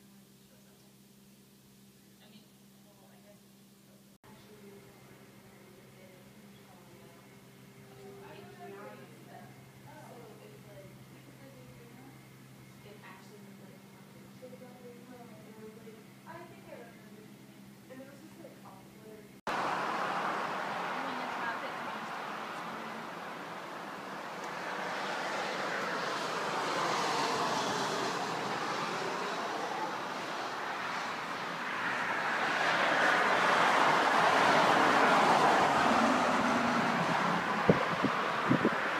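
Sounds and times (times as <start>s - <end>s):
cars passing: 19.5s - 38.9s
wind on microphone: 36.8s - 38.9s.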